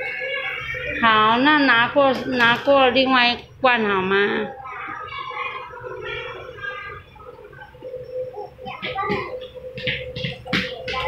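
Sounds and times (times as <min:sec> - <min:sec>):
children chattering: 0:00.0 - 0:02.9, 0:03.8 - 0:11.0
steady low hum: 0:00.0 - 0:11.0.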